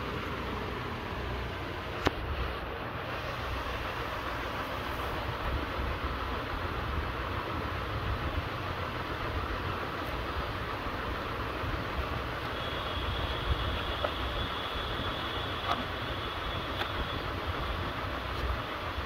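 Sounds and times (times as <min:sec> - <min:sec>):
hiss: 0:02.3 - 0:19.0.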